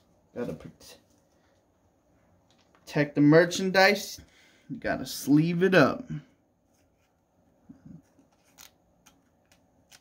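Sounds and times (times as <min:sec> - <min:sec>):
card sliding into plastic sleeve: 0:08.2 - 0:10.0.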